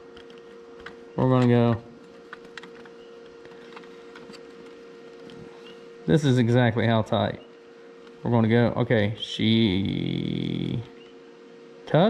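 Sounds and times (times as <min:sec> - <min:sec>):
steady hum: 0:00.0 - 0:12.0.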